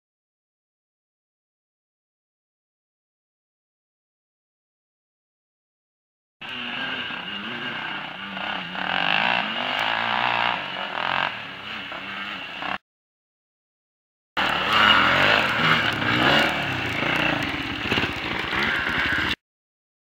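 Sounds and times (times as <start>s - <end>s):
off-road engines revving: 6.4s - 12.8s, 14.4s - 19.4s.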